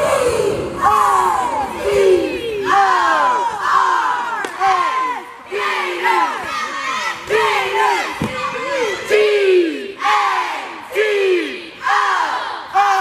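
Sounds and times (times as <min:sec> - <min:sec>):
cheerleaders shouting in unison: 0:00.0 - 0:13.0.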